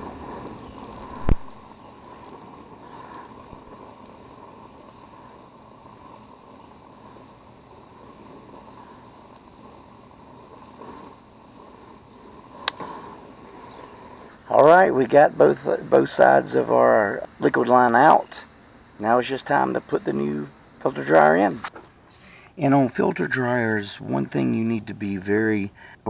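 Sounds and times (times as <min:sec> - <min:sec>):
torch burning with a hiss: 0:00.0 - 0:26.0
sharp clicks: 0:12.6 - 0:12.9.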